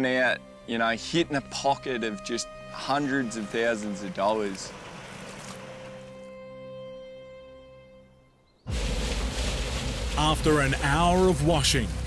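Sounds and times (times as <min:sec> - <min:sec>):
held music chord: 0:00.0 - 0:08.4.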